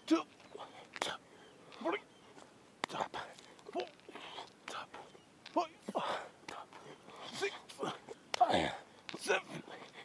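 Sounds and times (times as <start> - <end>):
man grunting: 7.3 - 9.6.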